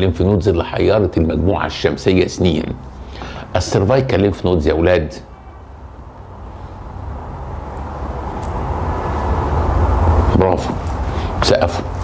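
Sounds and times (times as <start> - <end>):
low rushing rumble: 6.3 - 10.8.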